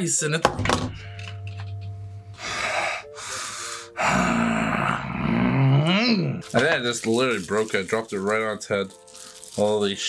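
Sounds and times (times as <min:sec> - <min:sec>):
man blowing out breaths: 0:02.3 - 0:05.0
man groaning: 0:04.0 - 0:06.4.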